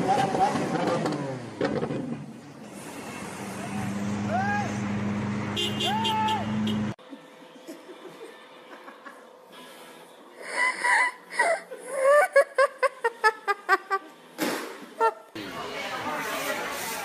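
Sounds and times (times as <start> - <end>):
high-pitched laughing: 10.4 - 14.1.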